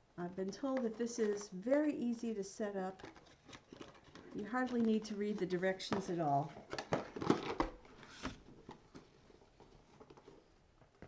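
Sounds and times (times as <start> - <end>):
box packaging crinkling: 0.5 - 11.0.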